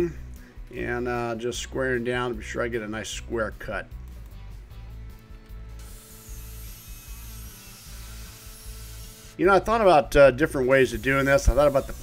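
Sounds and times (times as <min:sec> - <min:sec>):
guitar music with bass: 0:00.0 - 0:10.8
circular saw cutting metal: 0:05.8 - 0:09.7, 0:10.6 - 0:12.0.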